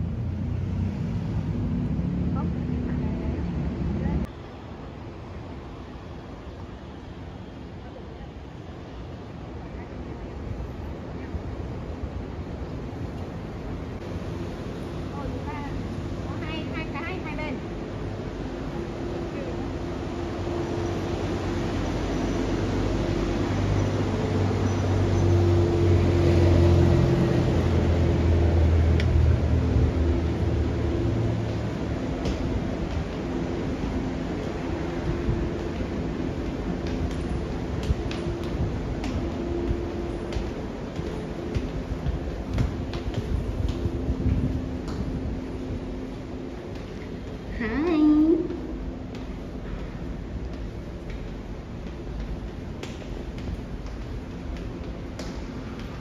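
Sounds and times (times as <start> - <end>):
passing vehicle engine hum: 0.0 - 4.4, 17.6 - 47.8.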